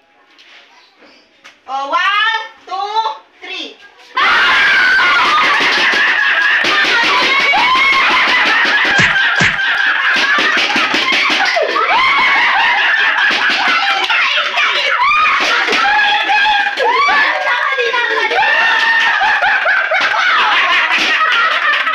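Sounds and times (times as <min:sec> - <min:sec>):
people screaming with laughter: 0:04.2 - 0:21.9
short thumps: 0:09.0 - 0:09.7.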